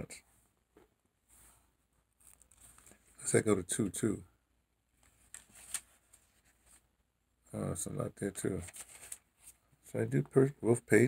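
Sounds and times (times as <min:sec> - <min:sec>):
thin pages being leafed through: 0:02.2 - 0:03.0, 0:05.0 - 0:06.8, 0:08.6 - 0:09.6.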